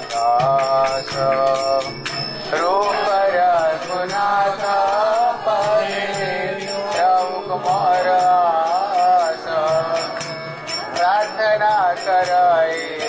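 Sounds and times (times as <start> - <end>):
devotional chant singing: 0.0 - 13.0
hand cymbals striking: 0.0 - 13.0.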